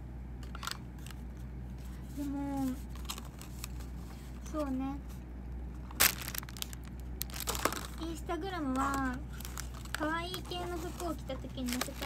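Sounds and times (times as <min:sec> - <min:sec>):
loud sharp crunch: 0:05.9 - 0:07.9.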